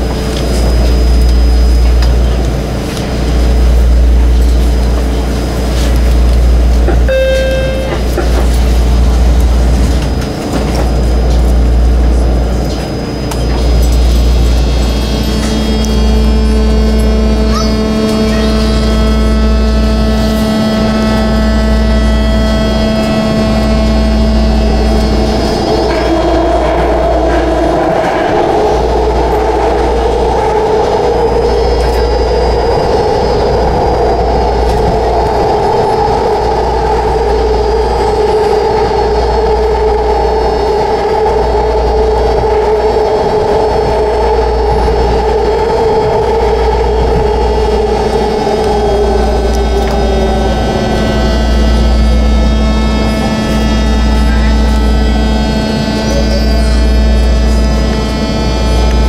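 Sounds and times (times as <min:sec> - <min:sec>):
droning two-pitched tone: 0:00.0 - 0:59.0
train wheels rumbling on rail: 0:00.0 - 0:59.0.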